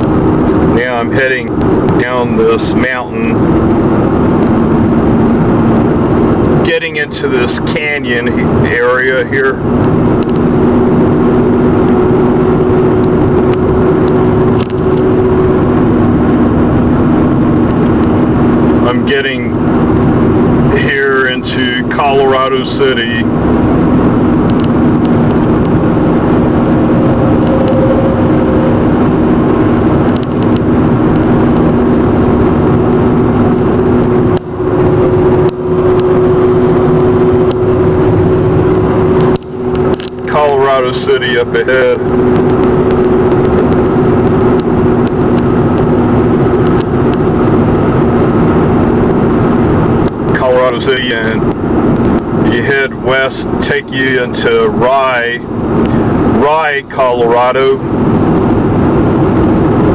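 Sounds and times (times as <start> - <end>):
car cabin highway drone: 0.0 - 59.9.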